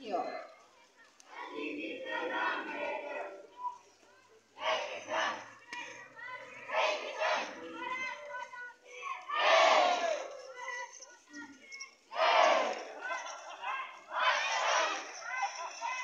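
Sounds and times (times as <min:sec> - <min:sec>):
children shouting slogans together: 0:01.2 - 0:11.5, 0:12.1 - 0:16.0.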